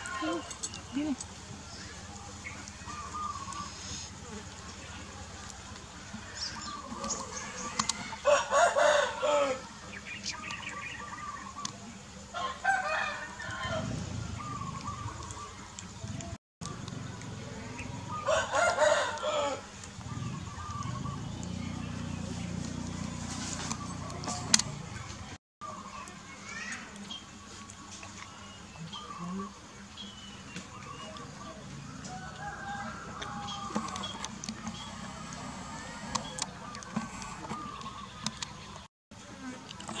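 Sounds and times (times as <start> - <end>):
rooster crowing: 8.1 - 9.7, 12.3 - 14.5, 18.0 - 19.7, 32.0 - 34.1.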